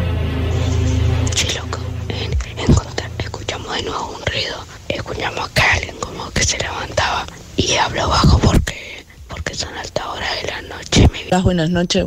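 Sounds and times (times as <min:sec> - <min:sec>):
music bed: 0:00.0 - 0:08.4
person whispering: 0:01.2 - 0:11.4.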